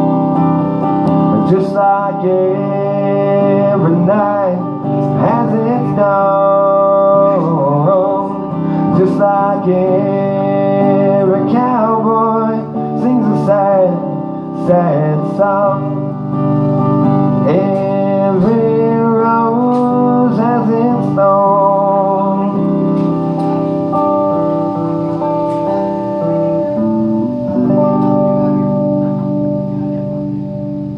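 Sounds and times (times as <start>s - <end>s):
amplified electric guitar chords: 0.0s - 30.9s.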